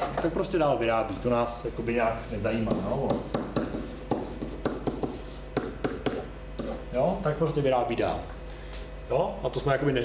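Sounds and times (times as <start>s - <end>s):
marker writing on whiteboard: 2.7s - 6.8s.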